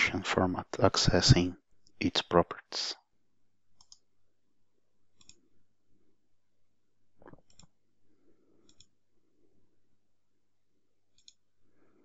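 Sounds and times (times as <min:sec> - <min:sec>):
computer mouse clicks: 0:03.8 - 0:04.1, 0:05.2 - 0:05.4, 0:07.2 - 0:07.8, 0:08.6 - 0:09.0, 0:11.1 - 0:11.4.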